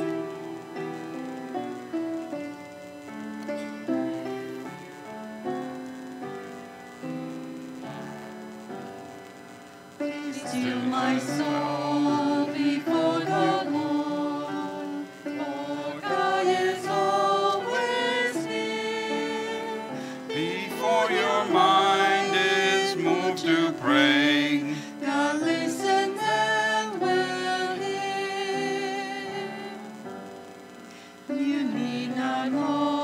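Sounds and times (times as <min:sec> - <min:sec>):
piano accompaniment: 0:00.0 - 0:09.4
small group singing a hymn: 0:10.0 - 0:30.0, 0:31.3 - 0:33.0.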